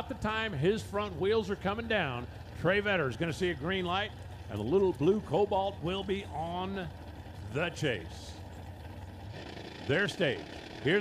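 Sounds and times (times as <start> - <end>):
faint open-air track noise: 0.0 - 11.0
race cars idling: 0.0 - 11.0.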